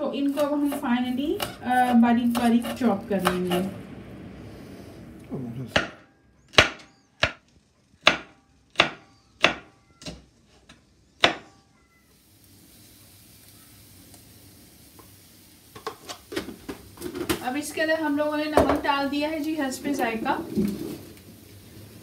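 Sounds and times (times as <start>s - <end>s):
knife chopping on plastic board: 8.0s - 9.7s
faint steady hiss: 9.4s - 22.0s.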